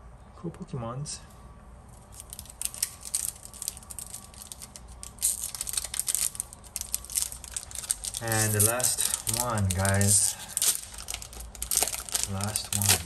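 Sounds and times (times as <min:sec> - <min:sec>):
foil wrapper crinkling: 0:02.0 - 0:13.0.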